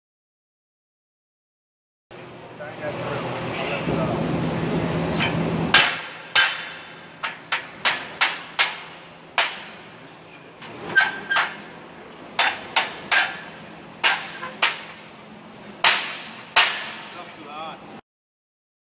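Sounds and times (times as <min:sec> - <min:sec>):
steady shop noise: 0:02.1 - 0:18.0
hammer striking steel band: 0:05.2 - 0:09.9, 0:12.4 - 0:15.0, 0:15.8 - 0:17.2.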